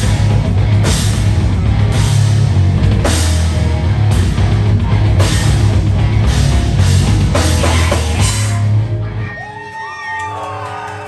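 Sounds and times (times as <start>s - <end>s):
live heavy rock band: 0.0s - 9.6s.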